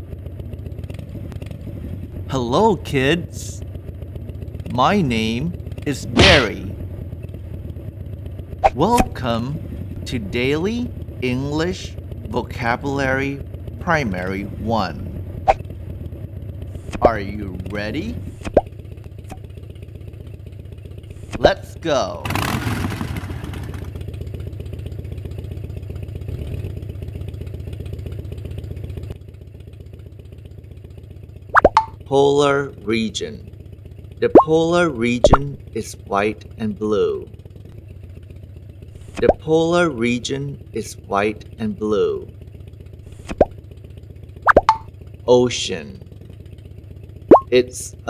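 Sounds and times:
motorcycle engine idling: 0.0 - 48.0
cartoon plop sound effects: 31.6 - 32.0, 34.2 - 34.5, 35.2 - 35.5, 44.5 - 44.9, 47.3 - 47.5.

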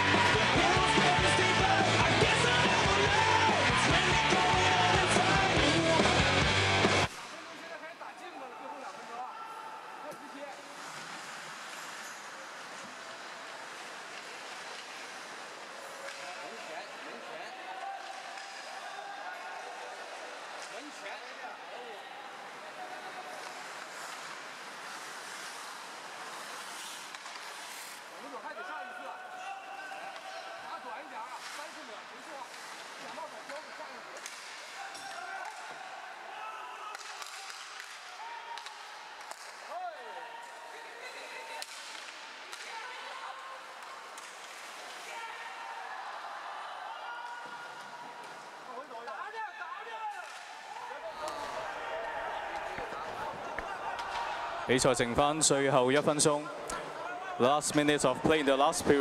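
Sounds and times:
hockey sticks and puck knocking: 23.4 - 28.0, 36.9 - 39.7.

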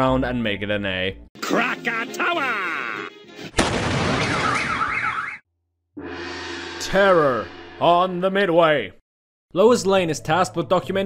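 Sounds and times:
warbling alarm wail: 4.2 - 5.4, 6.0 - 8.4.

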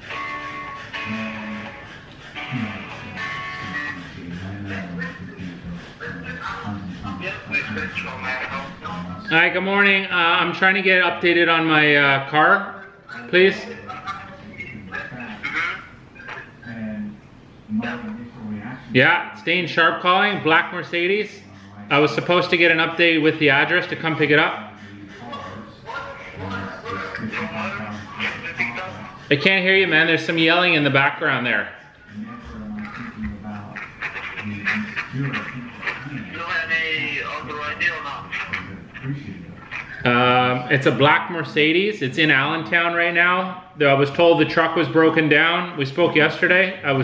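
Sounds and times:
yelling over phone line: 0.0 - 4.1
voice through phone earpiece: 0.9 - 10.7, 13.1 - 18.8, 21.4 - 41.6.

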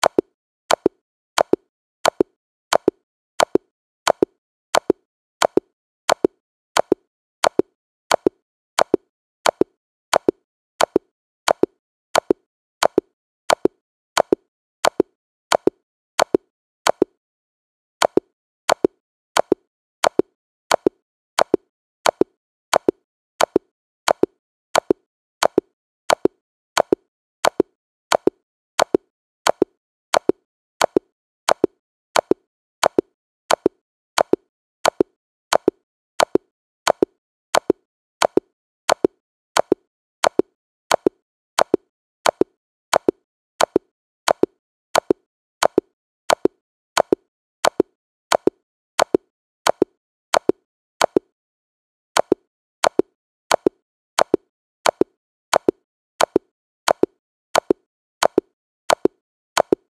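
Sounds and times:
sharp double click: 0.0 - 17.2, 18.0 - 51.3, 52.2 - 59.8.

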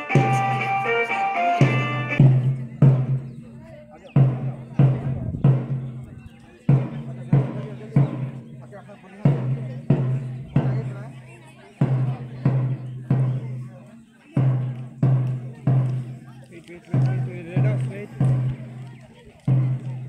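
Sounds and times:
deep drum beating time: 0.0 - 11.2, 11.8 - 13.8, 14.4 - 20.0.

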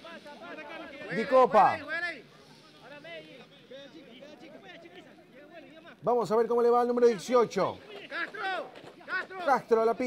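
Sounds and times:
faint shouts of players and onlookers: 7.3 - 10.0.

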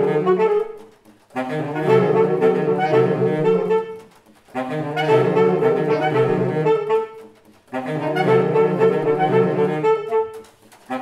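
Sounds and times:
saxophones playing in harmony: 0.0 - 11.0.

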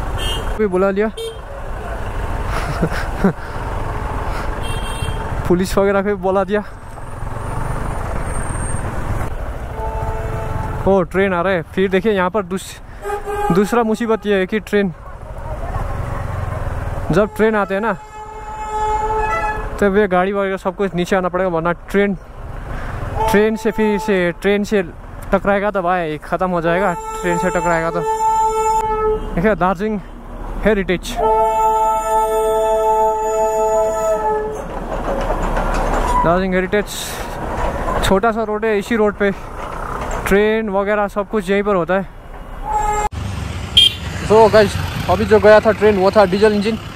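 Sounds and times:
surrounding traffic noise: 0.0 - 46.9
horn sounding: 4.6 - 5.5, 9.7 - 10.9, 13.0 - 14.4, 17.1 - 19.8, 26.8 - 29.4, 31.1 - 34.7, 42.6 - 44.4
train rolling on rails: 31.2 - 46.9.

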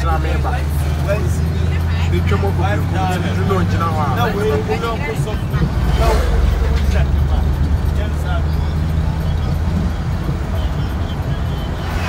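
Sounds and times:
faint voices: 0.0 - 12.0
vehicle rumble from inside cabin: 0.0 - 12.0.

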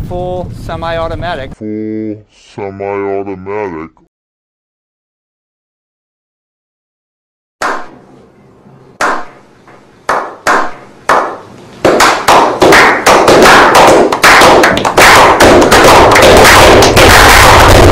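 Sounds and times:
slow hand claps into applause: 11.1 - 17.9.

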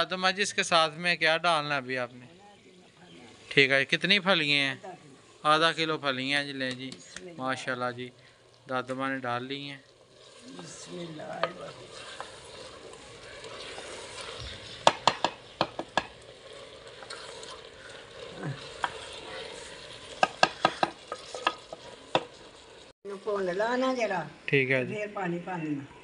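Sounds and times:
vegetables sizzling in oil: 0.0 - 24.8
ladle stirring in pot: 9.8 - 22.9
ladle knocking against pot: 14.8 - 16.1.

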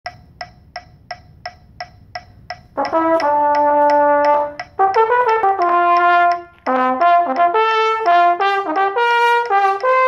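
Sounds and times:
metronome clicking: 0.0 - 10.0.

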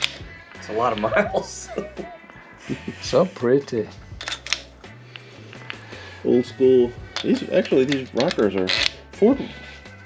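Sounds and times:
faint background music with bass: 0.0 - 10.0
metal parts clicking and tapping: 4.2 - 4.7, 7.1 - 9.0.

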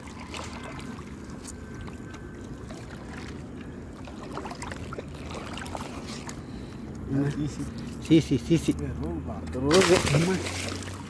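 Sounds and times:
boat low rumble and hiss: 0.0 - 11.0.

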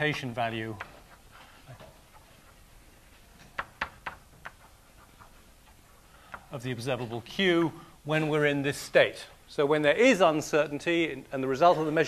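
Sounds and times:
chalk tapping on blackboard: 0.7 - 2.6, 3.4 - 6.5.

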